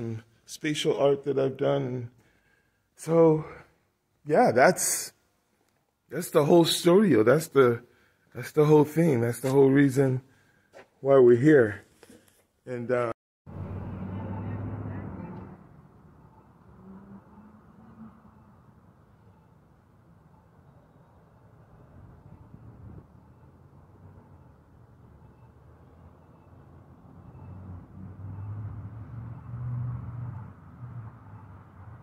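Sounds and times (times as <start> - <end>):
car engine and road rumble: 13.5 - 20.6.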